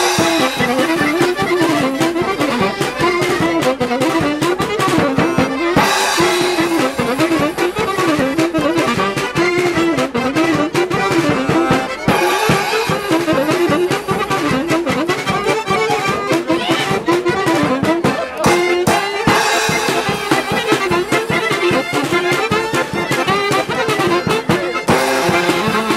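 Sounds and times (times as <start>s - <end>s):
button accordion: 0.0s - 25.9s
fiddle: 0.0s - 25.9s
folk band playing lively tune: 0.0s - 25.9s
saxophone: 0.0s - 25.9s.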